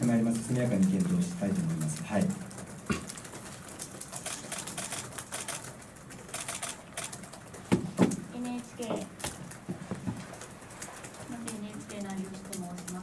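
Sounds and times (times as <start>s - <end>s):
laptop keyboards typing: 0.0s - 13.0s.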